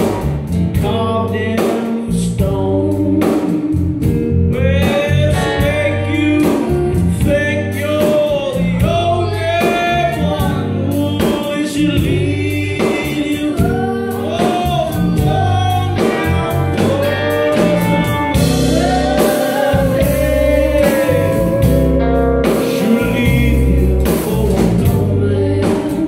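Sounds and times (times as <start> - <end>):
bass guitar: 0.0 - 26.0
drum kit: 0.0 - 26.0
guitars: 0.0 - 26.0
person singing: 0.0 - 26.0.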